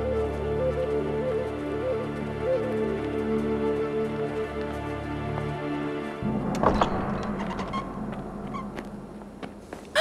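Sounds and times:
heavy wooden gate thudding shut: 6.2 - 8.0.

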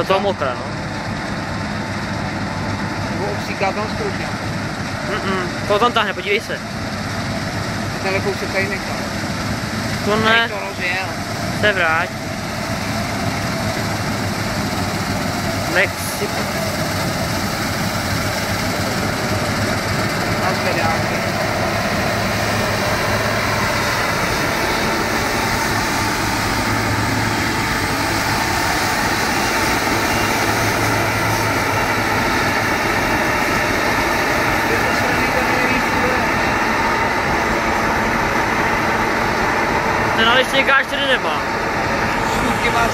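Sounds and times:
combine harvester engine running: 0.0 - 42.9.

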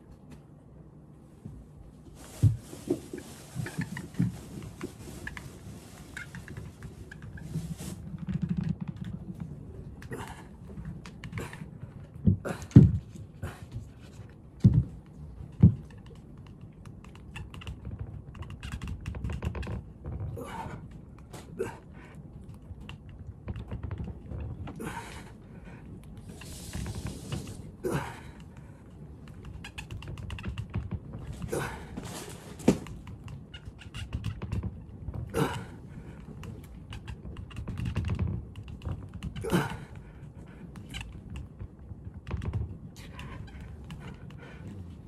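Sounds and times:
plastic wheels rolling on floor: 2.2 - 45.0.

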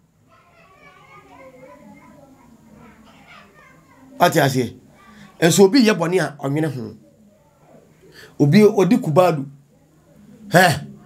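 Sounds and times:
faint children's voices: 0.0 - 11.0.

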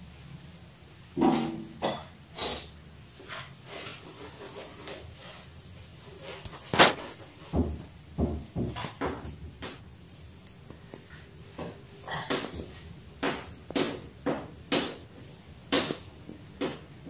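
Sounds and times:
chalk tapping on chalkboard: 11.6 - 16.9.

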